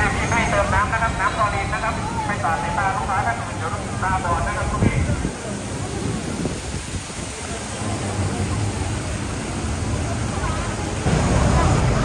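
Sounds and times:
crowd and city noise: 0.0 - 12.0.

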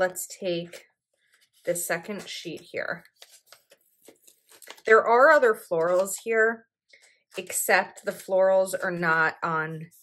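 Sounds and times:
woman speaking: 0.0 - 0.8, 1.7 - 3.0, 4.9 - 6.6, 7.4 - 10.0
paper pages rustling: 1.1 - 9.1.

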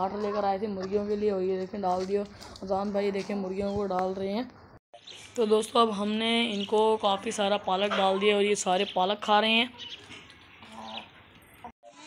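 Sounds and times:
chickens vocalising: 6.6 - 12.0.

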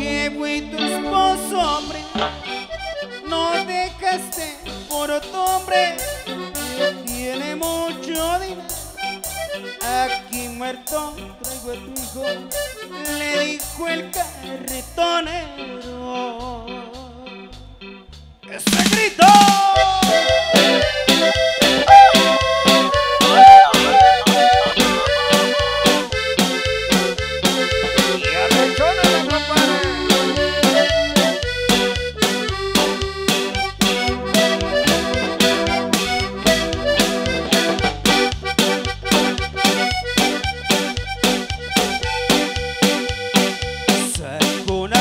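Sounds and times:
accordion lead: 0.0 - 16.5, 18.6 - 45.0
bass and drums beat: 1.2 - 45.0.

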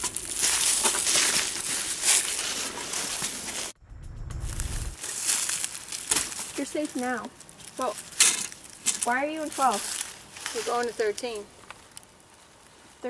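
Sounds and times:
dry leaves and fabric rustling: 0.0 - 3.8, 4.5 - 13.0
sharp crackles: 0.0 - 13.0
low rumble: 3.7 - 5.1.

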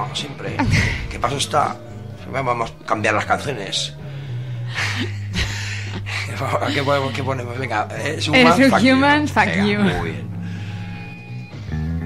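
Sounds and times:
background music: 0.0 - 12.0
person laughing breathily: 4.7 - 7.4.

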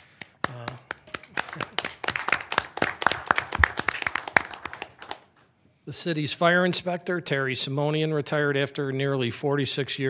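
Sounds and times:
small audience applause: 0.0 - 5.3.

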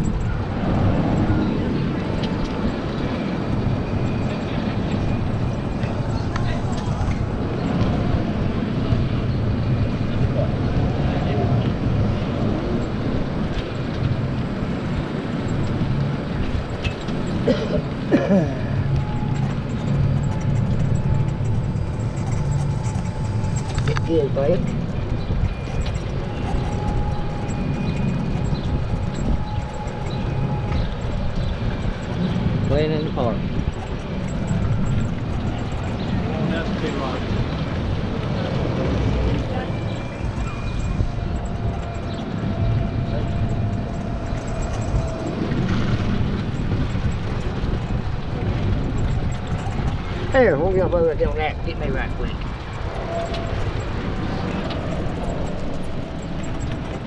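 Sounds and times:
golf cart rumbling: 0.0 - 57.0.

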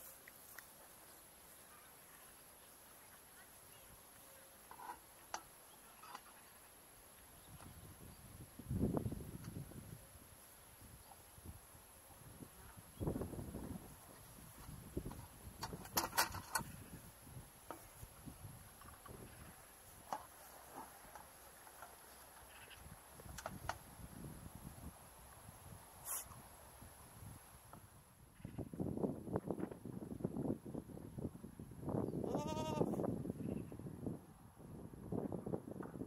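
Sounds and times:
goat bleating: 32.3 - 33.0.

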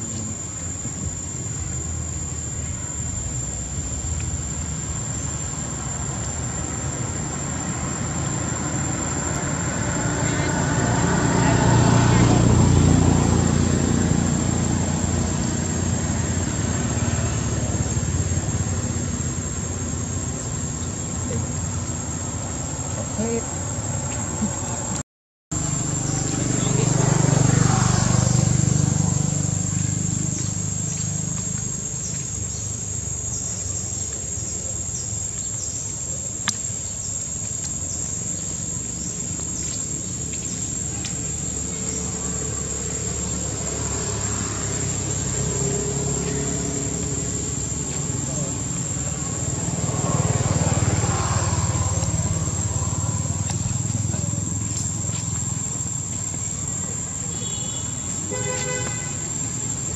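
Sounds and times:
high-pitched insect drone: 0.0 - 25.0, 25.6 - 59.9.

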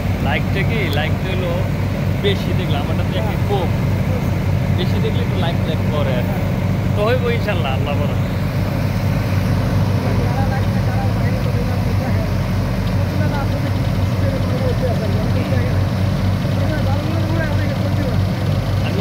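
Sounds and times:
diesel engine and water pump: 0.0 - 19.0.

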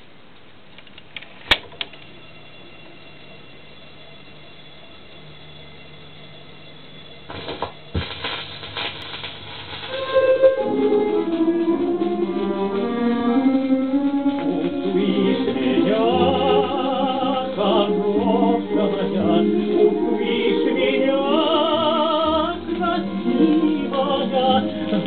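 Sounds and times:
steady low hum: 0.0 - 25.0
record music playing: 1.9 - 25.0
stylus crackle on record: 7.2 - 16.0, 21.4 - 25.0.

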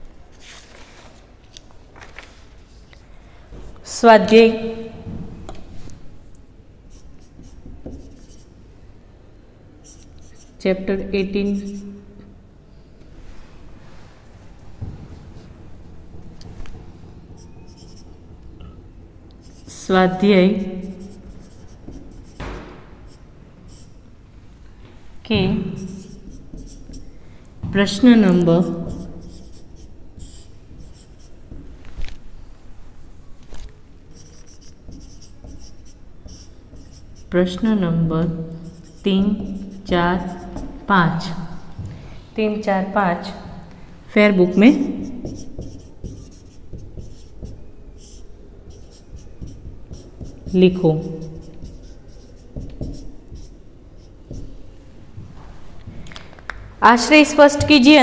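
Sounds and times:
marker writing on whiteboard: 6.9 - 8.6, 9.8 - 10.7, 11.3 - 12.0, 17.4 - 18.2, 19.4 - 24.0, 25.3 - 27.2, 27.8 - 31.7, 34.1 - 41.4, 44.2 - 54.7.

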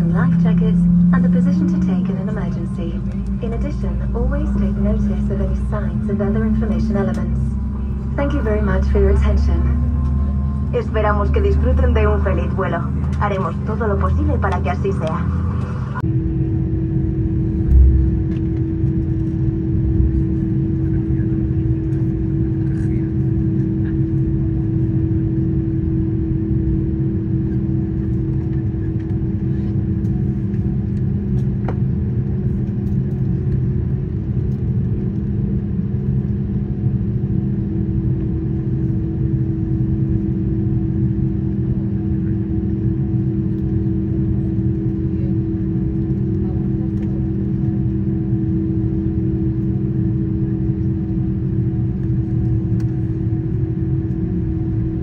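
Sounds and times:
airplane cabin rumble: 0.0 - 55.0
constant low hum: 0.0 - 55.0
low thump: 17.6 - 18.4.

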